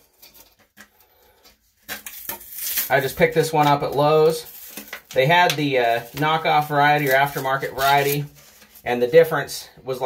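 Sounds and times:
soft rustles: 0.0s - 9.2s.

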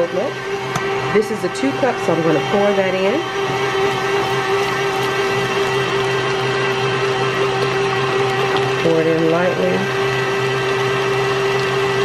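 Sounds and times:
stand mixer motor humming: 0.0s - 12.0s.

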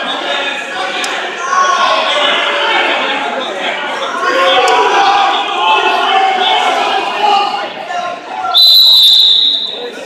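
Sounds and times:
referee's whistle blast: 8.6s - 10.0s.

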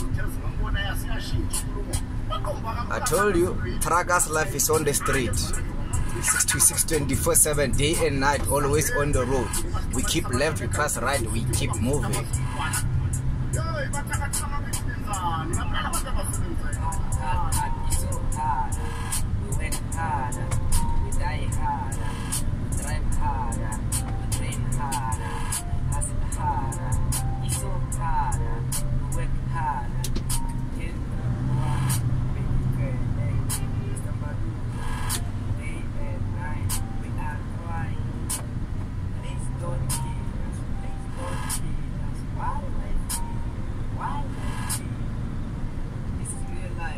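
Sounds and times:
person talking: 0.0s - 12.8s
background voices: 0.0s - 22.2s, 22.8s - 38.3s
music: 0.0s - 45.5s, 46.1s - 46.9s
road noise: 0.0s - 46.9s
truck engine rumble: 0.0s - 46.9s.

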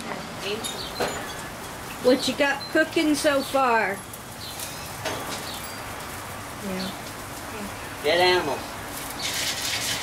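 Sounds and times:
steady hiss: 1.3s - 10.0s.

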